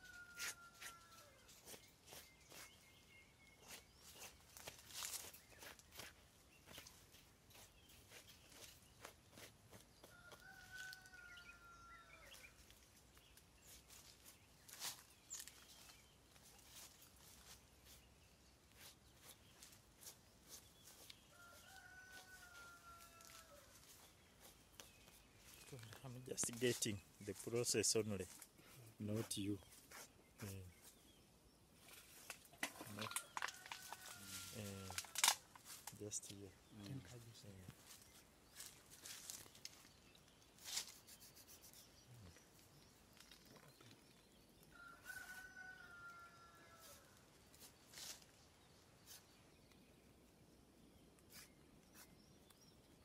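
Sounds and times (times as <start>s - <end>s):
rooster crowing faintly: 0.0s - 1.8s, 10.0s - 12.5s, 20.9s - 24.0s, 32.7s - 35.8s, 44.7s - 47.2s.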